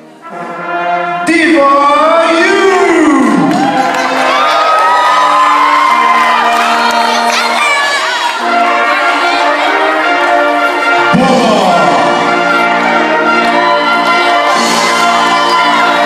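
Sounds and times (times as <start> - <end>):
brass band holding chords: 0.0 - 16.0
audience cheering and whooping: 3.2 - 9.8, 13.0 - 16.0.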